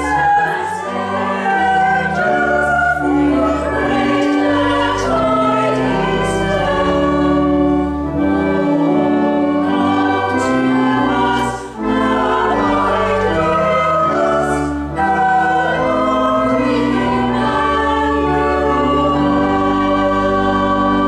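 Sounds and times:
church choir singing: 0.0 - 21.0
organ holding low notes: 0.0 - 21.0.

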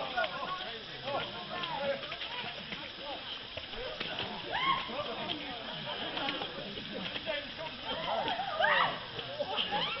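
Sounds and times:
background voices: 0.0 - 10.0.

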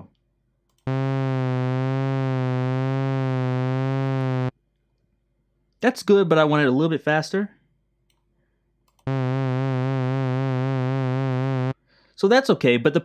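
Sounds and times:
low synthesizer note with vibrato: 0.9 - 4.5, 9.1 - 11.8.

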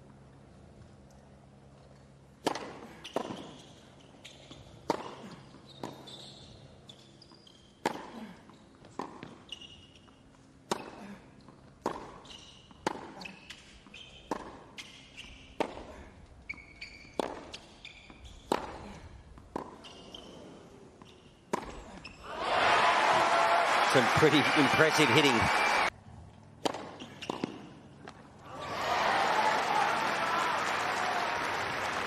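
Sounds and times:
shoe squeaks: 2.9 - 7.8, 8.5 - 10.3, 12.2 - 15.6, 16.4 - 18.5, 19.7 - 22.3
racket striking ball: 26.6 - 27.7.

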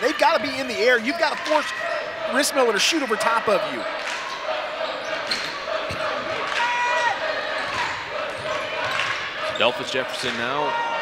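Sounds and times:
crowd noise: 0.0 - 11.0
sneaker squeak: 4.3 - 6.0, 7.6 - 10.5.

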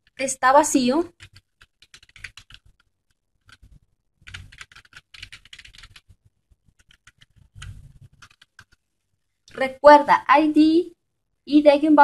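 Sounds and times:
computer keyboard typing: 1.0 - 8.8.

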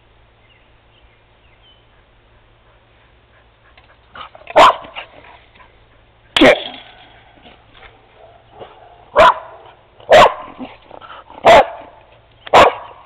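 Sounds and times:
dog barking: 4.5 - 5.1, 8.1 - 10.7, 11.4 - 13.0.

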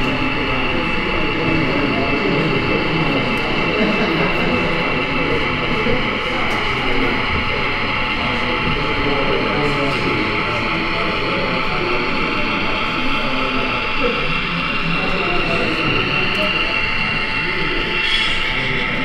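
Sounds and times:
crowd chatter: 0.0 - 19.0
model train whine: 0.0 - 19.0.

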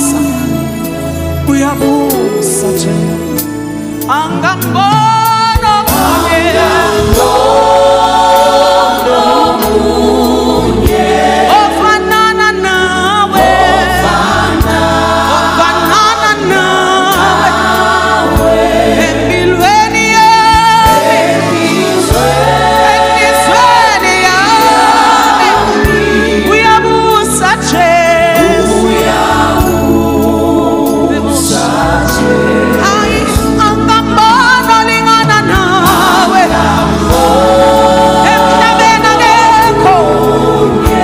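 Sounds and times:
gospel singers with band: 0.0 - 41.0
steady bass line: 0.0 - 41.0.

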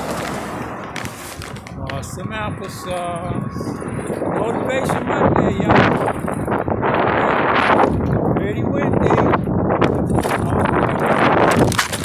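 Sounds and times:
wheelchair rattling over concrete: 0.0 - 1.9, 9.9 - 12.0
wind buffeting microphone: 0.0 - 12.0.

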